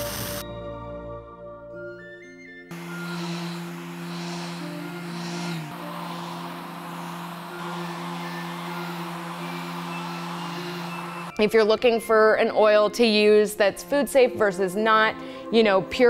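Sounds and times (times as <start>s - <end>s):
background music: 0.0s - 16.0s
orbital sander on wood: 2.7s - 11.3s.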